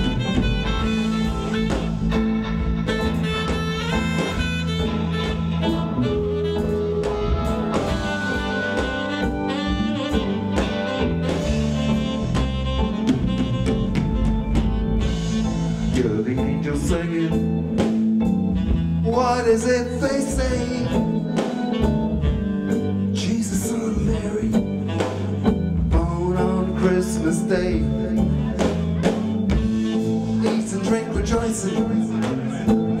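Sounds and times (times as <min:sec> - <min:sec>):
bass: 0:00.0 - 0:33.0
electric guitar: 0:00.0 - 0:33.0
keyboard: 0:00.0 - 0:33.0
saxophone: 0:00.0 - 0:33.0
steady drum beat: 0:00.0 - 0:33.0
man singing: 0:15.8 - 0:18.0, 0:19.0 - 0:21.4, 0:23.1 - 0:29.2, 0:29.9 - 0:33.0.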